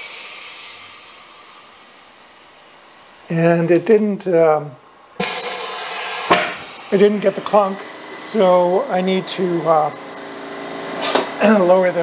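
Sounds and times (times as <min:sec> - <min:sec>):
compressed air hissing: 0:00.0 - 0:12.0.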